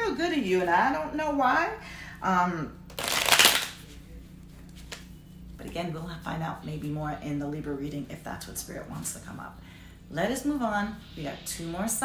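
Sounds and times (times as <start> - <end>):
cards shuffling: 2.9 - 3.8.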